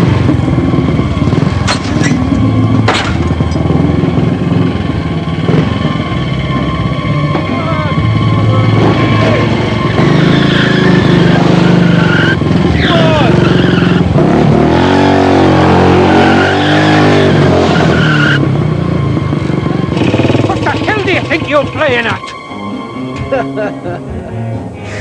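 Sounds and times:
motorcycle engines revving: 0.0 - 25.0.

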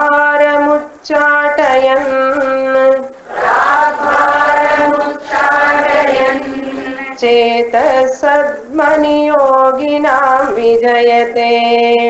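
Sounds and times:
woman chanting verse: 0.0 - 12.0.

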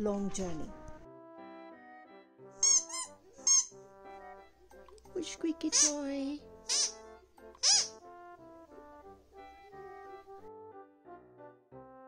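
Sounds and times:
soft background music: 0.0 - 12.0
squeaky toy squeaks: 2.6 - 3.8, 5.7 - 8.0.

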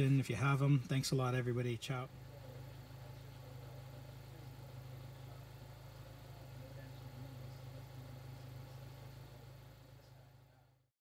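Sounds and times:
car engine idling: 0.0 - 10.8.

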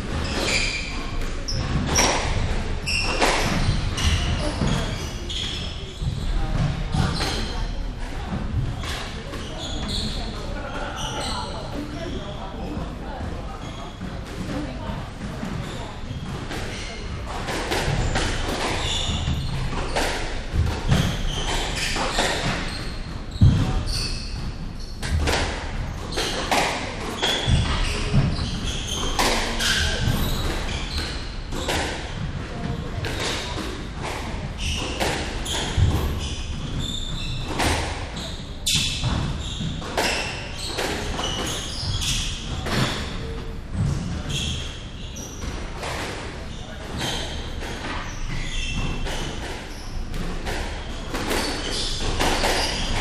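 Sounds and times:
squash ball impacts: 0.0 - 10.7, 11.8 - 53.0.

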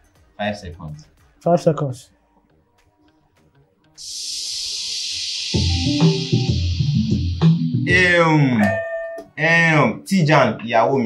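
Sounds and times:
steady high hiss: 4.0 - 7.6.

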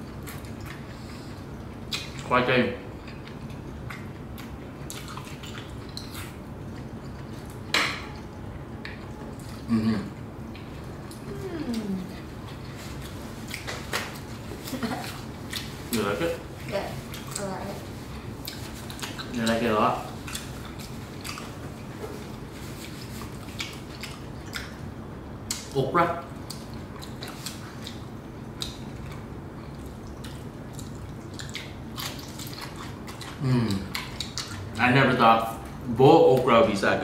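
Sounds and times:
people chewing: 0.0 - 2.3, 2.9 - 24.9, 25.5 - 36.5
low room hum: 0.0 - 37.0.

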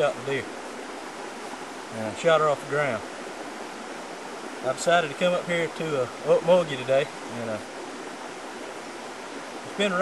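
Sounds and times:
creek running water: 0.0 - 10.0.

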